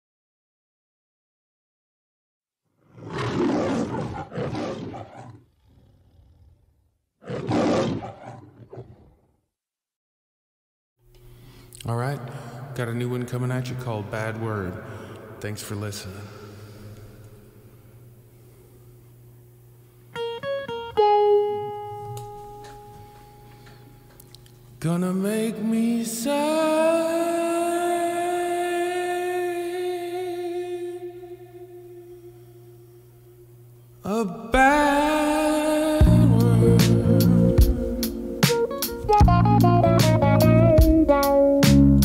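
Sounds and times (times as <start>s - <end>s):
low growl: 2.8s - 9.3s
lion roaring: 2.8s - 9.4s
guitar picking notes: 20.1s - 24.3s, 34.7s - 42.0s.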